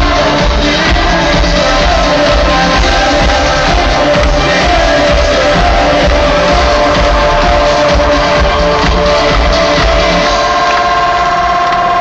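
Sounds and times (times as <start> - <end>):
bass beat: 0.0 - 12.0
held electronic chord: 0.0 - 12.0
loud live concert music: 0.0 - 12.0.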